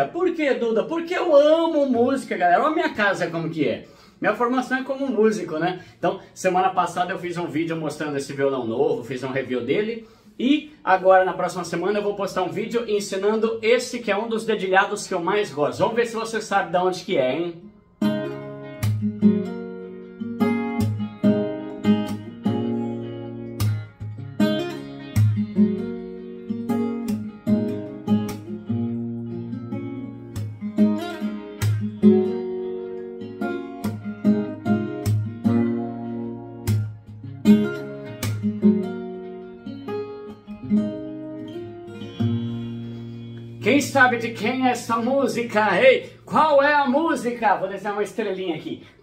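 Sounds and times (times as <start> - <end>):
fingerpicked acoustic guitar: 17.6 - 46.3.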